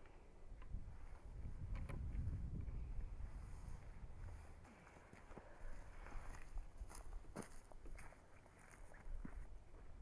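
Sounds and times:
wind rumble on microphone: 0.5 - 4.6
footsteps on gravel: 4.7 - 10.0.

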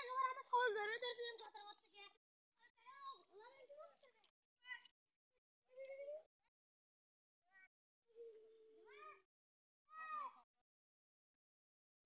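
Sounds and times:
young child's voice: 0.0 - 4.9, 5.7 - 6.3, 7.5 - 9.3, 9.9 - 10.4.

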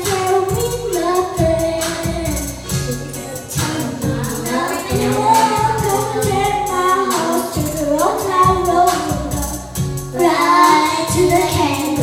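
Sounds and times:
children singing into microphones: 0.0 - 12.0
pop backing track with drums: 0.0 - 12.0.

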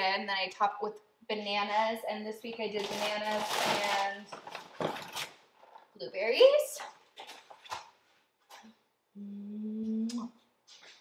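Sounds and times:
paper bag crinkling: 2.7 - 5.8.

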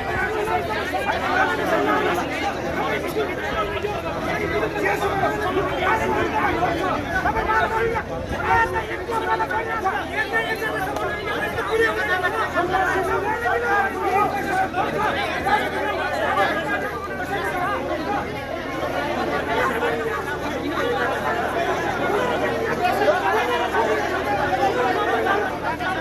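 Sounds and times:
men arguing and shouting: 0.0 - 26.0.

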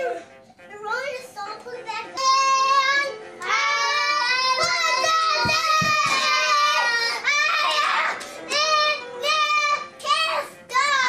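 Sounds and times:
child singing high notes: 1.0 - 11.0.

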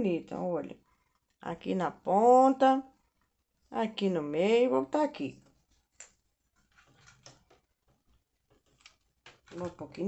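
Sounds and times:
faint clicks and taps: 5.4 - 10.0.

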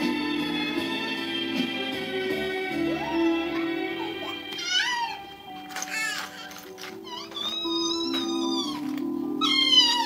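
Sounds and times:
background music sustained notes: 0.0 - 10.0
meowing call: 9.4 - 10.0.

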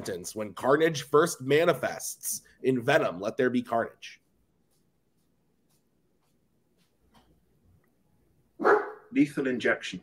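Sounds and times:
dog barking loudly: 8.6 - 9.1.

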